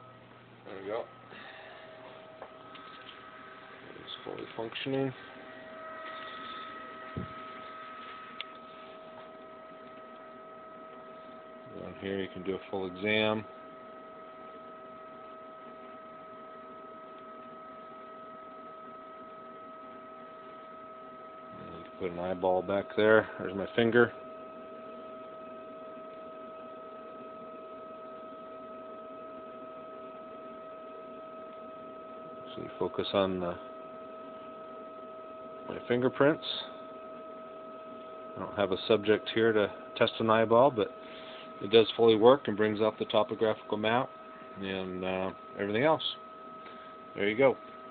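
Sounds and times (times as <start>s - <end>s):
electrical hum with high whine: 0.0s - 47.9s.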